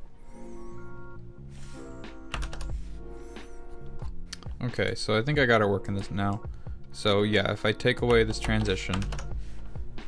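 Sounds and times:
soft held music chords: 0.0s - 10.0s
computer keyboard keystrokes: 2.3s - 2.7s.

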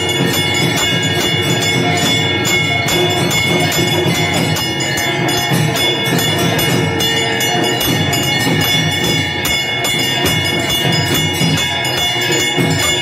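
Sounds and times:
bells and cymbals clanging: 0.0s - 13.0s
pulsing drumbeat: 0.0s - 13.0s.

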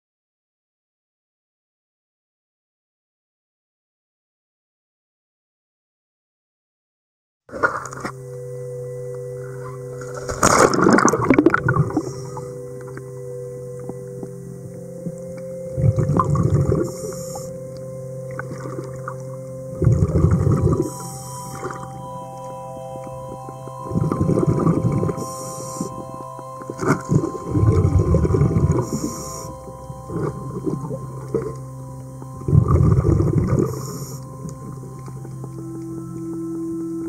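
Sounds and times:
diver exhaling bubbles: 10.3s - 12.5s, 19.8s - 21.0s, 26.7s - 31.6s, 32.4s - 34.8s
regulator hiss: 11.8s - 18.4s, 19.3s - 37.0s.

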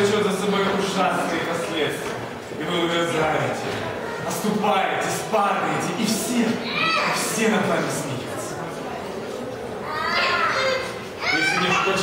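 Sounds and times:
hall background noise: 0.0s - 12.0s
child calling out: 9.8s - 12.0s.

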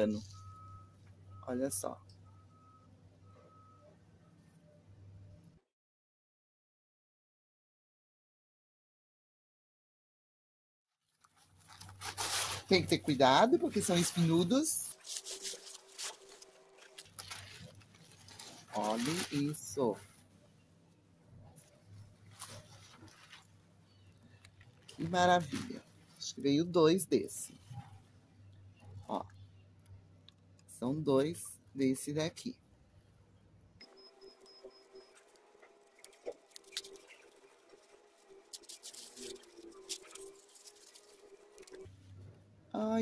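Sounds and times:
wrapping crinkling and rustling: 11.0s - 20.3s, 21.6s - 26.4s, 34.2s - 42.0s
faint rustles and light clicks: 14.9s - 19.4s, 20.0s - 26.3s.

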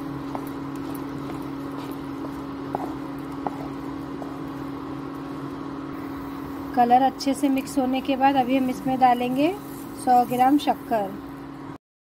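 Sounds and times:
low electrical hum: 0.0s - 11.8s.

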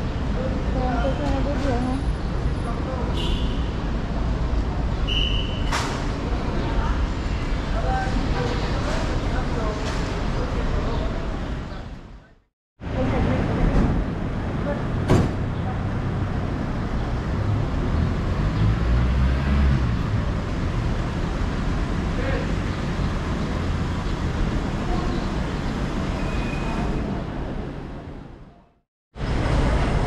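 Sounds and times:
vehicles idling and passing: 0.0s - 28.6s, 29.2s - 30.0s
people talking: 0.4s - 2.0s, 7.7s - 14.9s.

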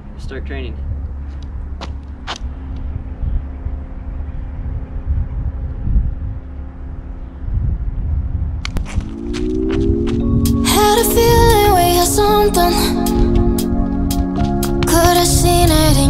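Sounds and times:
wind rumble on microphone: 0.0s - 16.0s
music with held chord: 9.9s - 16.0s.

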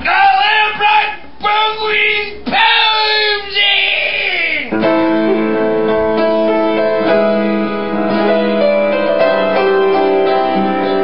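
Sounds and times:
piano chord ringing: 4.7s - 11.0s.

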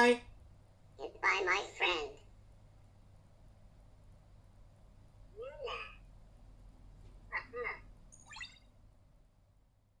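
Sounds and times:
faint hum: 0.0s - 10.0s
short electronic chirps: 8.2s - 8.7s.

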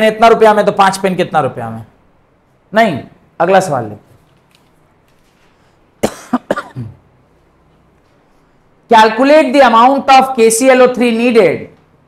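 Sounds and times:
man coughing: 6.0s - 7.0s
throat clearing: 6.0s - 7.0s.

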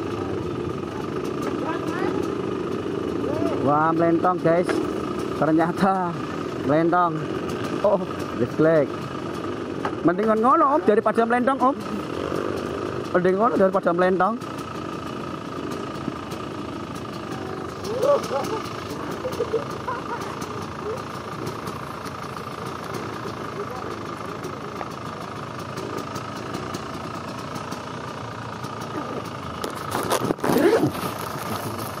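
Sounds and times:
dirt bike engines idling: 0.0s - 32.0s
people's voices: 17.2s - 21.2s.

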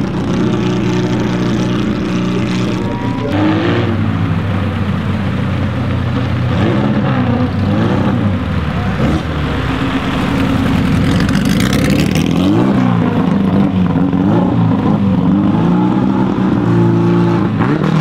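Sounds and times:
car engine driving past: 0.0s - 13.9s.

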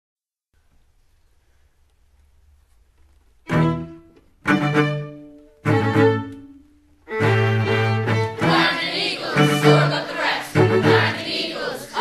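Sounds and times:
faint low hum: 0.6s - 12.0s
bowed strings playing chords: 3.5s - 11.6s.

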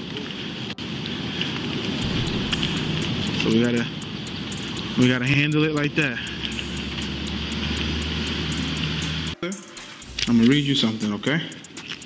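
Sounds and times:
outdoor rumble and hiss: 0.0s - 9.4s
low hum: 1.4s - 9.4s.

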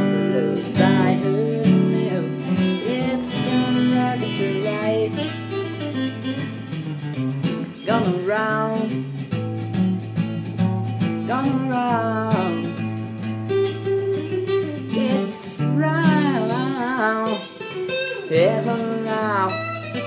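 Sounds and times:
rock and roll guitar: 0.0s - 20.0s.

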